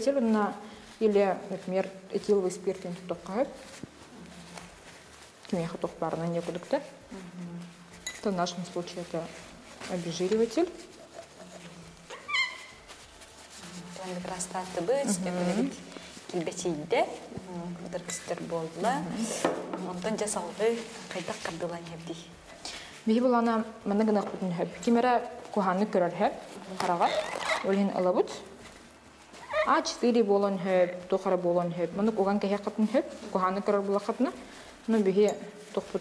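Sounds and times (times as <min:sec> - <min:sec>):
woman talking: 0:00.0 - 0:03.8, 0:05.4 - 0:12.0, 0:13.7 - 0:28.6, 0:29.4 - 0:36.0
paper wiping glass: 0:00.0 - 0:22.6
high squeak of paper on glass: 0:12.1 - 0:13.3, 0:27.0 - 0:27.8.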